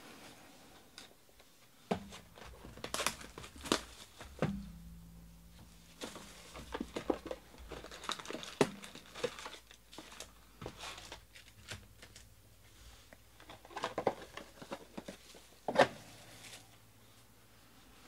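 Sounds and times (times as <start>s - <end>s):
foil card packs rustling: 2.0s - 4.6s, 6.0s - 12.3s, 13.1s - 16.7s
shrink-wrap crinkling and tearing: 2.3s - 4.2s, 6.0s - 12.3s
sharp knock: 4.3s - 6.5s.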